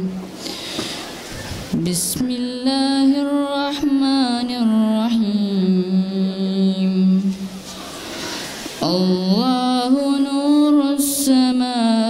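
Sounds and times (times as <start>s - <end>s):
boy chanting melodic recitation: 1.8s - 7.5s, 8.8s - 12.0s.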